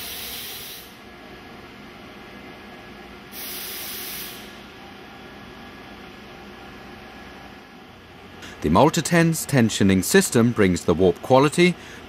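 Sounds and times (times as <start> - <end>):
low background hum and hiss: 0.0 - 12.0
loud high hiss bursts: 3.4 - 4.6.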